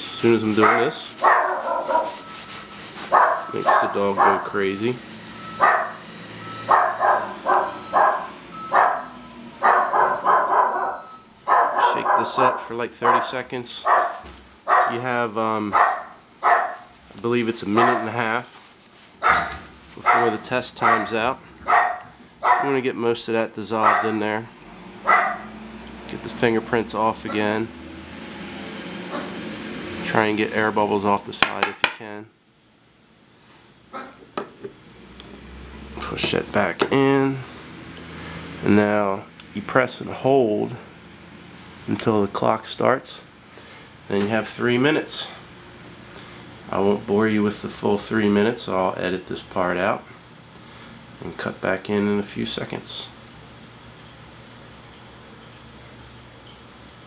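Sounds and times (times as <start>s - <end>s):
dog barking: 0.6s - 2.2s, 3.1s - 4.6s, 5.6s - 6.0s, 6.7s - 15.0s, 15.7s - 16.9s, 17.8s - 18.2s, 19.2s - 22.7s, 23.8s - 24.2s, 25.0s - 25.5s.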